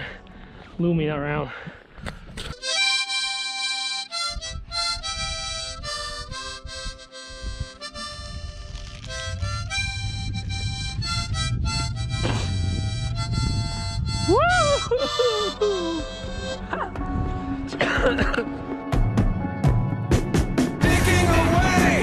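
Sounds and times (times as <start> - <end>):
harmonica melody: 2.4 - 18.9
wind rumbling on microphone: 4.2 - 17.7.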